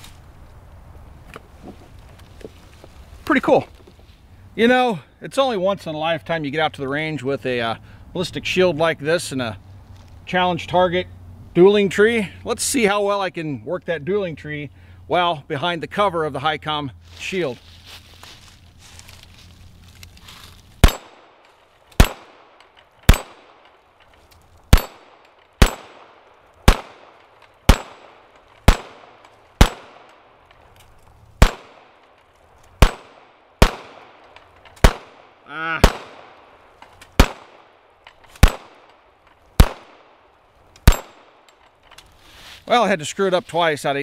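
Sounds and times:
pistol shots: 0:20.8 - 0:21.4, 0:22.0 - 0:23.7, 0:24.7 - 0:30.4, 0:31.4 - 0:32.1, 0:32.8 - 0:36.6, 0:37.2 - 0:37.8, 0:38.4 - 0:39.0, 0:39.6 - 0:41.5.

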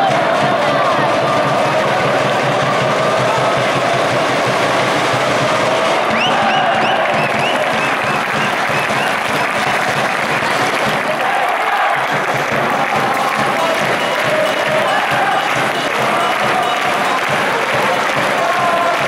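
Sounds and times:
crowd clapping: 0:00.0 - 0:19.0
murmur of many voices: 0:00.0 - 0:19.0.

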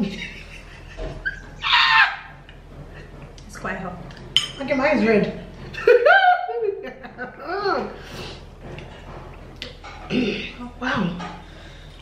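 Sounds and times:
woman squealing with laughter: 0:01.2 - 0:02.3, 0:05.9 - 0:06.8.

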